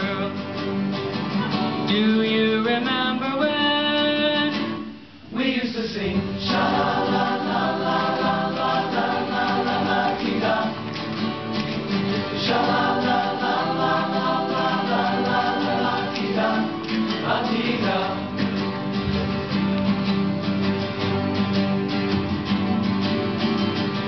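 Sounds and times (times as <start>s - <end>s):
male choir singing chords: 5.4s - 19.0s.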